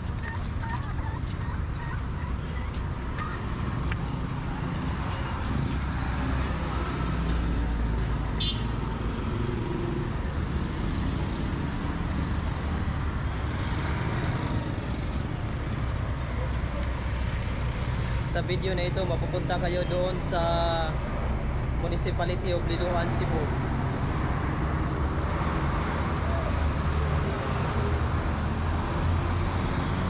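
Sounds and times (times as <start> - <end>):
road traffic passing: 0.0 - 30.0.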